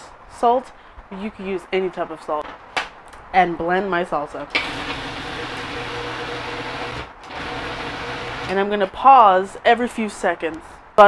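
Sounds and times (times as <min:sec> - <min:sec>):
food processor running: 0:04.6 - 0:08.5.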